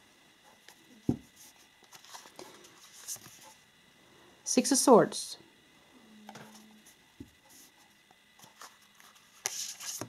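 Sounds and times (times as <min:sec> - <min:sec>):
cards sliding and ticking: 0:08.4 - 0:10.0.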